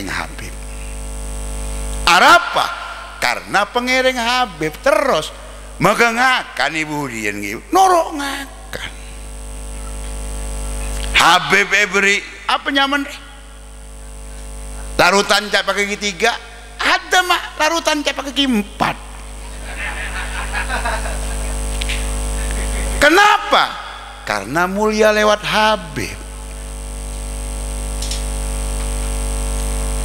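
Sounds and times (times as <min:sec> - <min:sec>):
electrical mains hum: 0:00.0 - 0:30.0.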